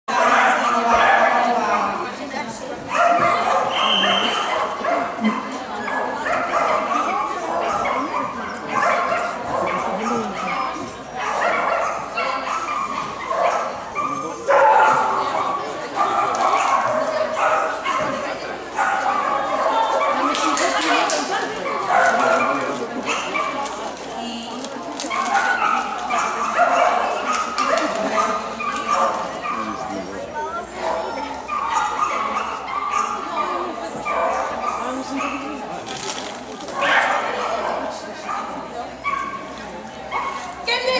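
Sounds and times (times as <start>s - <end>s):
dogs barking and yipping: 0.1s - 2.0s, 2.9s - 23.8s, 25.0s - 30.0s, 30.7s - 40.7s
people talking: 0.1s - 40.9s.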